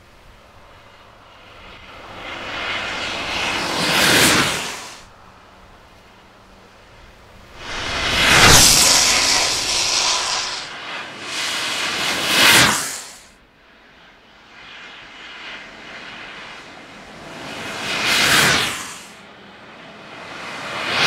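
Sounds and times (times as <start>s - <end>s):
skateboard wheels roaring on asphalt: 0.0s - 13.3s, 14.0s - 21.0s
wind rushing: 1.7s - 5.5s, 6.9s - 13.2s.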